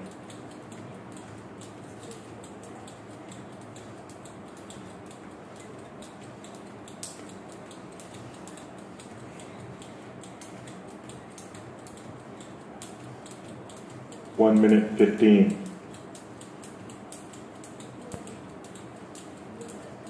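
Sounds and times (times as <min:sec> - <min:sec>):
jump rope ticking on floor: 0:00.0 - 0:20.0.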